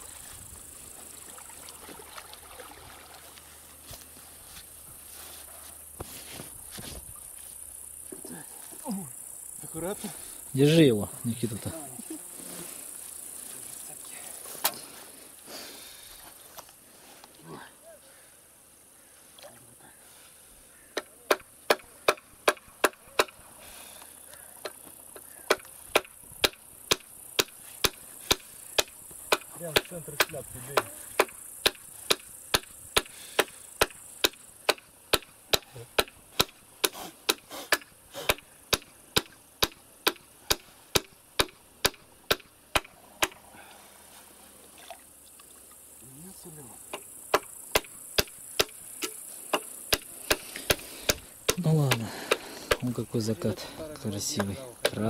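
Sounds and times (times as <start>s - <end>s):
men's voices: 51.6s - 55.0s.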